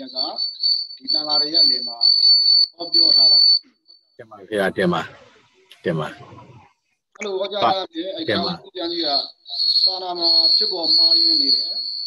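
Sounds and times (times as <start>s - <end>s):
man speaking: 0.0s - 0.3s, 1.1s - 2.0s, 2.8s - 3.4s, 4.2s - 6.4s, 7.2s - 9.2s, 9.9s - 11.7s
high-pitched steady tone: 0.0s - 3.6s, 7.2s - 12.0s.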